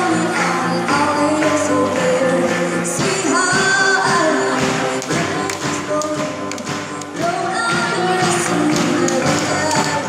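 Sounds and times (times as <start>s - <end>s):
drum kit: 0.0s - 10.0s
electric guitars: 0.0s - 10.0s
person singing: 0.0s - 10.0s.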